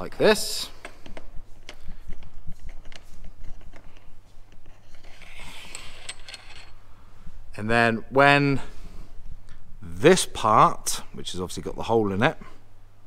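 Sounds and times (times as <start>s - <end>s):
metal bolts sliding in rail: 4.6s - 6.8s.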